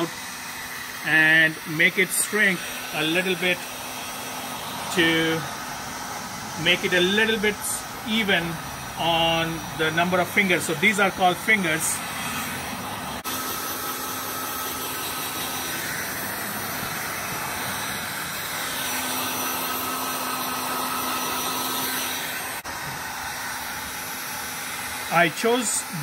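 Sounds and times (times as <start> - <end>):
heat gun blowing: 0.0 - 26.0.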